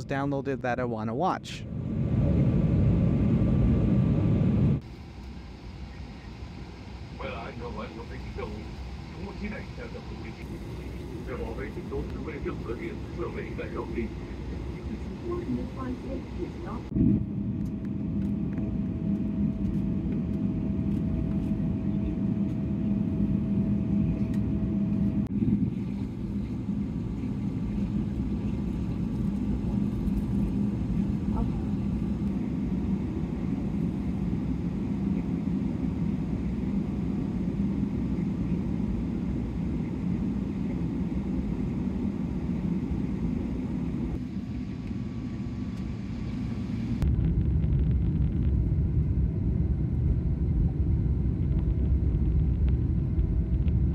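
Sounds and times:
jet engines rumbling: 0.0s - 53.9s.

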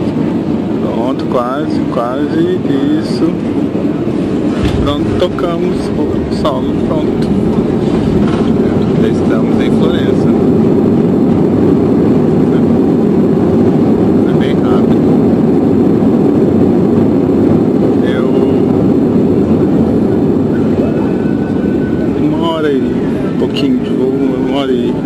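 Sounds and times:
airliner engines and wheels rumble: 0.0s - 25.0s.

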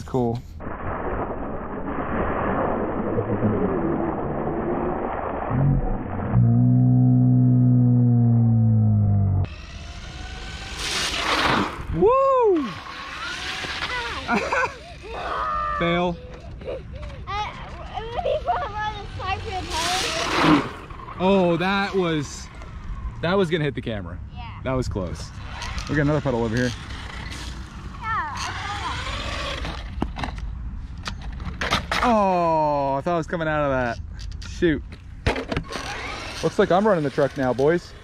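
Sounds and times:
deep drawn-out hum: 0.0s - 15.5s
children shouting and talking: 13.7s - 20.4s.

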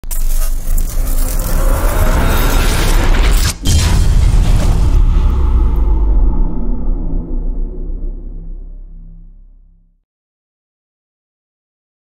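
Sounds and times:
low rumble with rushing hiss: 3.7s - 9.9s.

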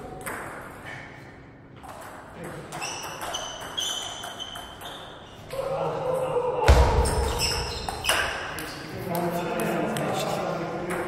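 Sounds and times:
ping-pong ball bouncing: 0.1s - 0.8s, 1.8s - 5.2s
heavy low thud: 6.7s - 7.8s.

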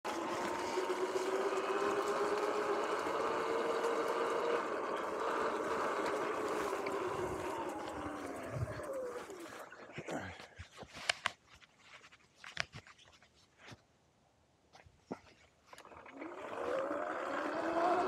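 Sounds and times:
electric motor whining: 0.0s - 9.9s, 15.8s - 18.0s.

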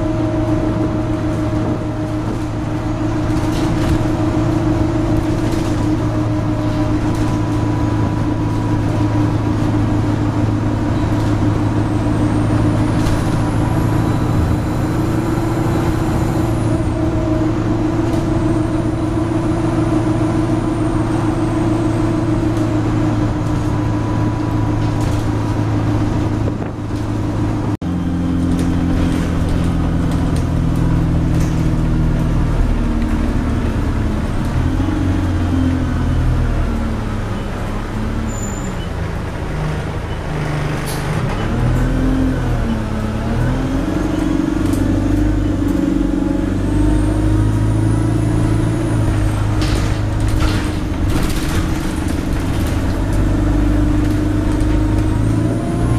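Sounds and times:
bus diesel engine: 0.0s - 55.9s
road noise: 0.0s - 55.9s.

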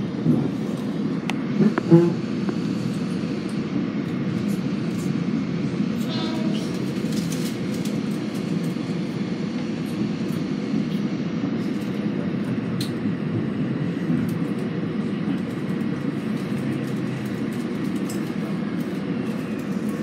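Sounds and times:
train car rumble from inside: 0.0s - 20.0s.

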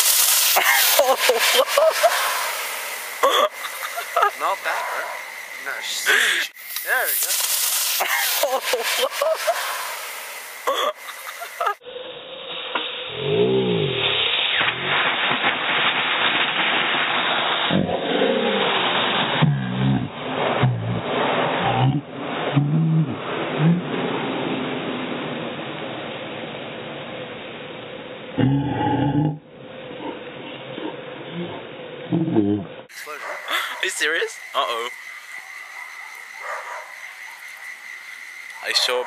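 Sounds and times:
sparkler bomb hissing: 0.0s - 22.6s, 32.9s - 39.0s
laughter: 0.6s - 2.3s, 3.3s - 4.4s, 8.0s - 9.7s, 10.9s - 11.8s.

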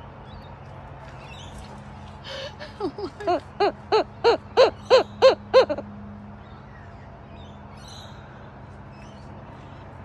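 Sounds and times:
kookaburra hooting: 3.2s - 5.8s.

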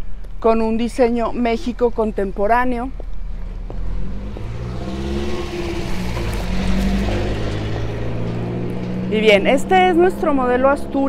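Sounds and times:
car engine humming: 0.0s - 11.0s.

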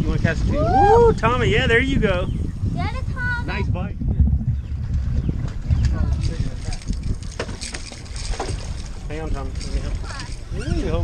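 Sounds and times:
low rumble: 0.0s - 9.7s
wind buffeting microphone: 0.0s - 11.0s
fish splashing at surface: 7.2s - 9.1s.

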